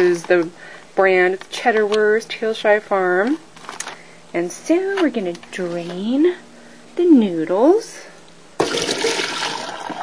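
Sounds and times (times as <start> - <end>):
water poured into a sink strainer: 8.6 - 10.0.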